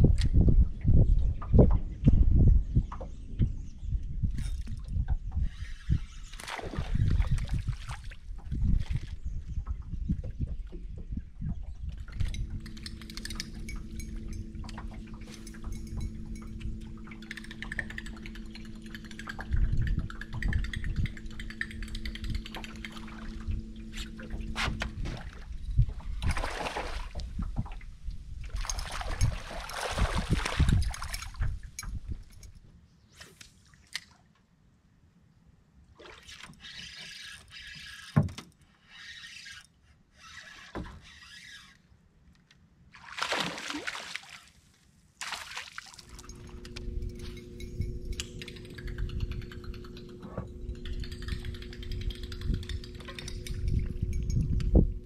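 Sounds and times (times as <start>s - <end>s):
water splashing and sloshing: 4.4s - 32.4s, 35.9s - 38.4s, 42.9s - 48.8s
electric trolling motor humming: 11.8s - 27.6s, 46.0s - 55.0s.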